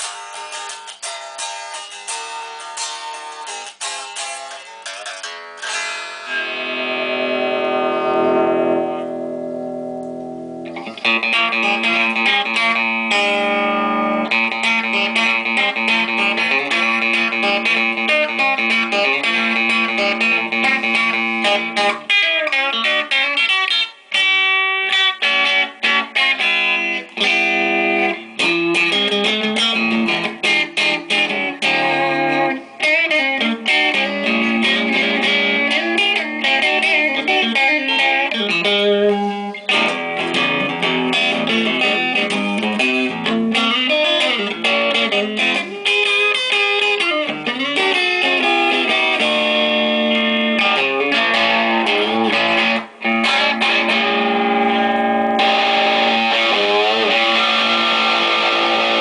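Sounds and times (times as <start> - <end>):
electric guitar playing: 0.0 - 59.0.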